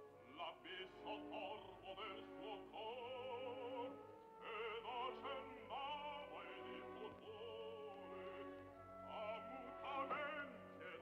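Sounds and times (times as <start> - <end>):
operatic singing with vibrato: 0.0 - 11.0.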